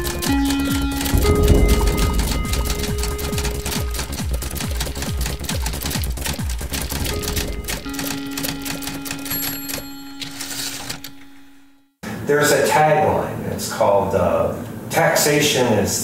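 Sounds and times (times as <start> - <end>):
music with low drum thumps: 0.0 - 8.3
typewriter clacking: 0.0 - 11.2
held low note: 1.0 - 5.5, 7.0 - 9.2.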